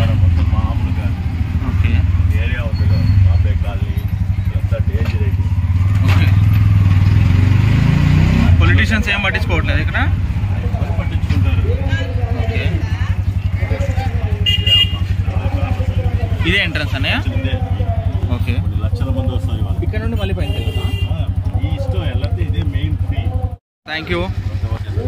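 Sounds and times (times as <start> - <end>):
rickshaw engine puttering: 0.0 - 25.0.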